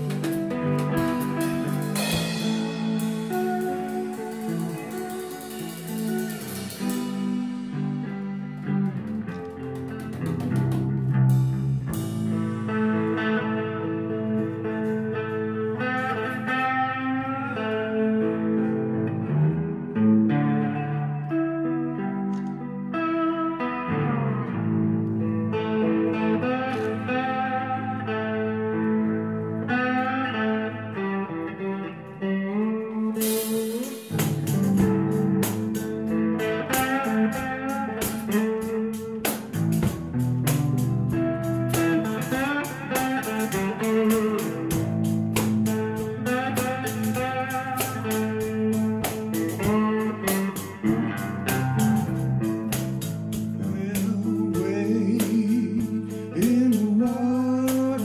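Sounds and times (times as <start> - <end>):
drums with hi-hat ticks: 0.0 - 12.7, 33.2 - 58.0
blues guitar: 0.0 - 58.0.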